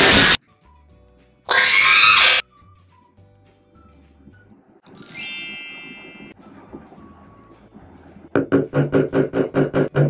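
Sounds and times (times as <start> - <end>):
scream-like sound effect: 1.5 - 2.4.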